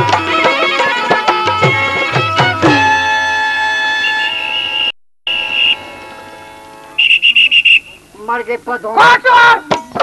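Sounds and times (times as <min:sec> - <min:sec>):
music: 0:00.0 - 0:07.0
police whistle blasts: 0:04.0 - 0:06.0, 0:06.9 - 0:08.1.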